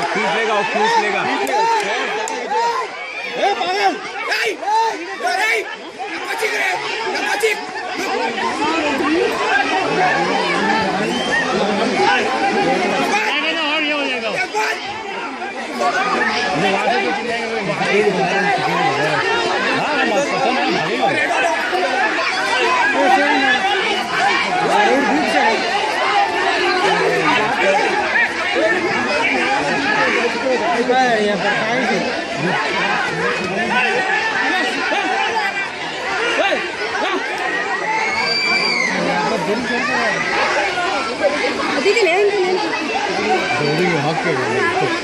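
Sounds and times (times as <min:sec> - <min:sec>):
overlapping chatter: 0:00.0 - 0:45.0.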